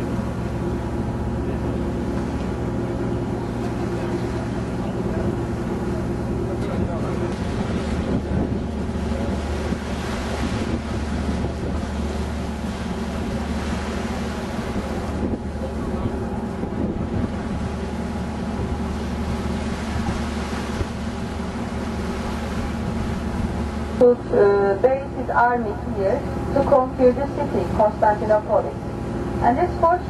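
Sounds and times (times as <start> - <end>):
wind buffeting microphone: 0.0 - 24.7
air and water noise: 0.0 - 30.0
boat engine droning: 0.0 - 30.0.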